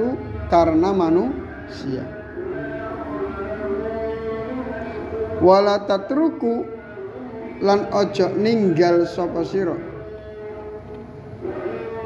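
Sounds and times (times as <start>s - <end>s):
man chanting melodic recitation: 0.0s - 12.0s.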